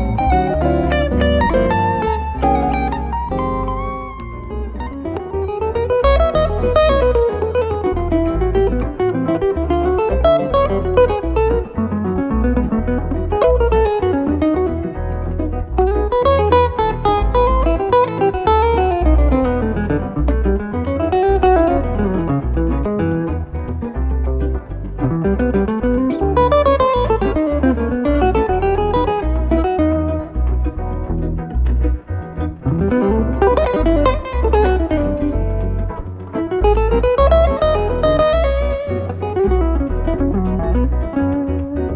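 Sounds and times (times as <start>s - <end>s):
jazz electric guitar duo: 0.0s - 41.9s.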